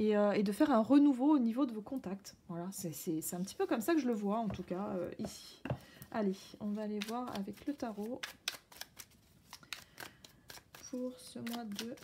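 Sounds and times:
cards clicking and snapping: 0:08.2 - 0:12.0.

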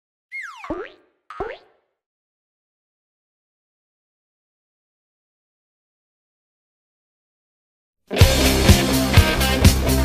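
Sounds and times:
cartoon boing sound effects: 0:00.3 - 0:01.9.

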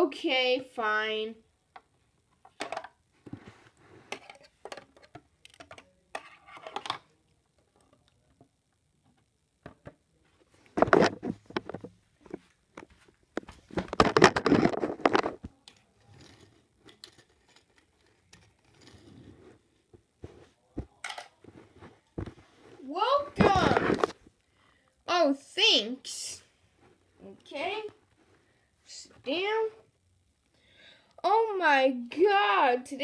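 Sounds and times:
plastic toys clicking and clattering: 0:04.1 - 0:07.1, 0:13.8 - 0:19.0
wordless voice sounds: 0:22.8 - 0:24.1.

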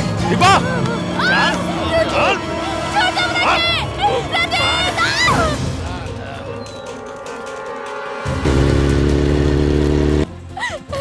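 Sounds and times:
motorcycle engine running: 0:00.0 - 0:05.2, 0:07.4 - 0:10.3.

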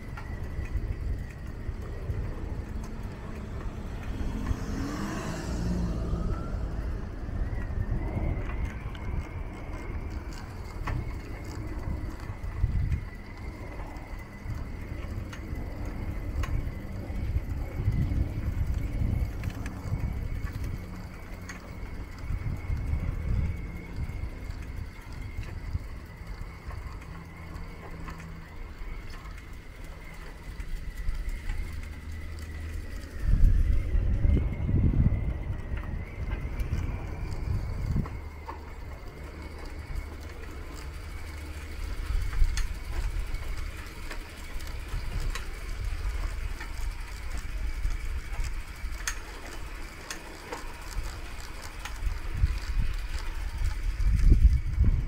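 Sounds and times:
low rumble: 0:00.0 - 0:30.4, 0:31.0 - 0:48.8.

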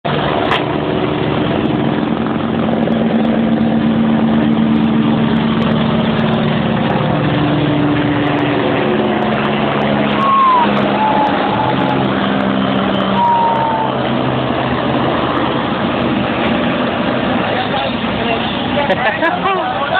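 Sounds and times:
helicopter flying overhead: 0:00.1 - 0:19.9.

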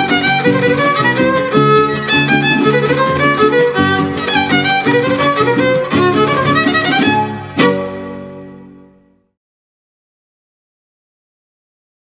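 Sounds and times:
strummed guitar chords: 0:00.0 - 0:09.0
violin melody: 0:00.0 - 0:09.0.

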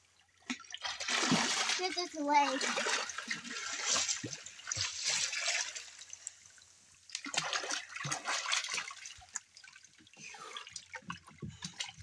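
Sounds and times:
child splashing in water: 0:00.8 - 0:05.8, 0:07.2 - 0:09.1.

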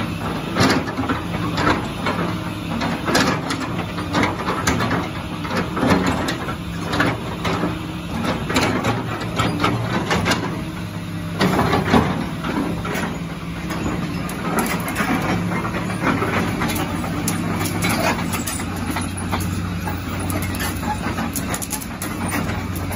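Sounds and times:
excavator diesel engine idling: 0:00.0 - 0:22.9.

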